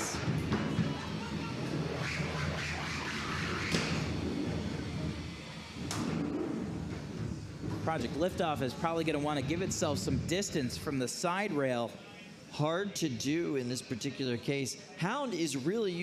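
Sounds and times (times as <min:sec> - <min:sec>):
robot motors humming: 0:00.1 - 0:10.9.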